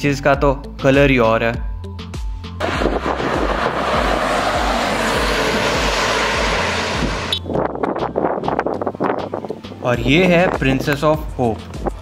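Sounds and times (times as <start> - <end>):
loud rushing noise: 2.6 - 7.5.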